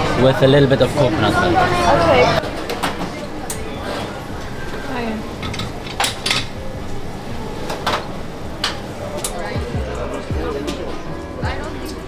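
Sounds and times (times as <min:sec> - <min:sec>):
chatter: 0:00.0 - 0:12.0
background music: 0:04.3 - 0:12.0
cups and dishes clinking: 0:04.8 - 0:09.4.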